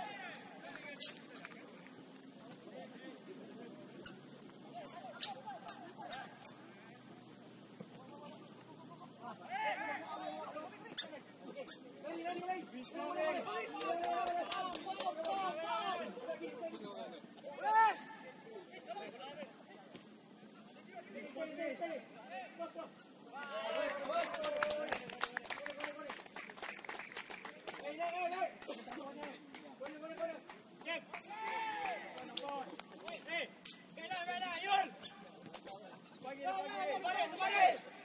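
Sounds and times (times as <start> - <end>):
players shouting: 9.3 - 10.9, 12.3 - 16.2, 31.1 - 32.4, 36.5 - 38.0.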